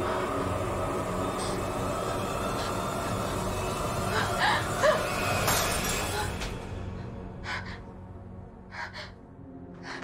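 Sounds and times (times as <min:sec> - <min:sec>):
low dark music score: 0:00.0 - 0:10.0.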